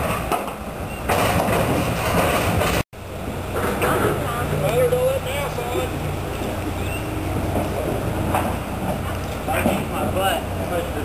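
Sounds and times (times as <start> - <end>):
engine idling: 0.6 - 11.0.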